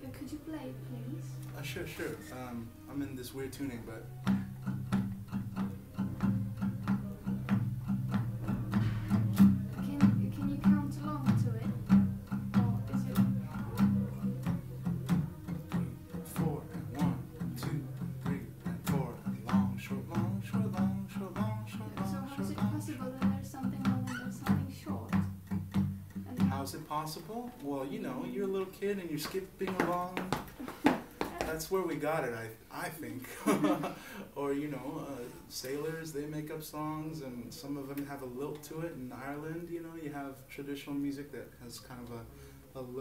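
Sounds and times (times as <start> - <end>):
acoustic guitar strumming: 0.0 - 30.5.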